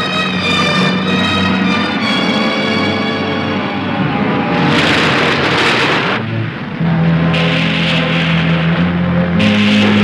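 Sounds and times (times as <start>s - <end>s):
trailer music: 0.0s - 10.0s
wide rushing noise: 0.9s - 10.0s.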